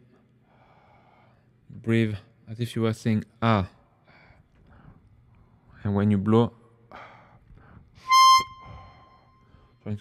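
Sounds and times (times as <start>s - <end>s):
soft breath: 0.0s - 1.6s, 3.9s - 5.8s, 6.9s - 9.8s
harmonica high note: 8.0s - 9.4s.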